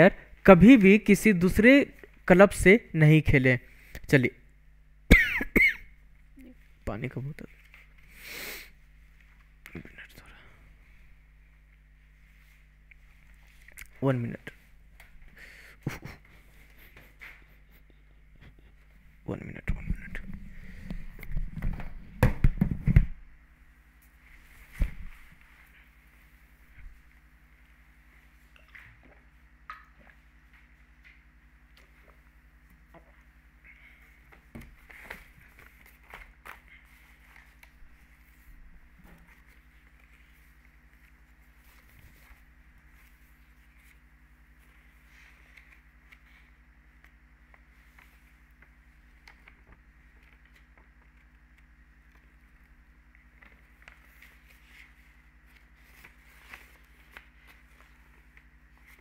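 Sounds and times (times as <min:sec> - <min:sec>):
electrical hum: 0:00.0 - 0:59.0.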